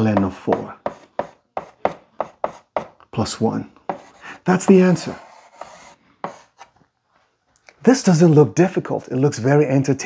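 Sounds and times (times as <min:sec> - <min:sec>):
chalk writing on blackboard: 0:00.0 - 0:03.0, 0:03.8 - 0:06.7.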